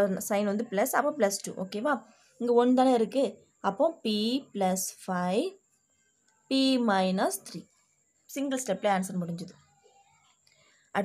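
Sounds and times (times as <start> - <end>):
woman speaking: 0.0 - 5.6, 6.5 - 7.6, 8.3 - 9.6
faint high-pitched whine: 0.0 - 11.0.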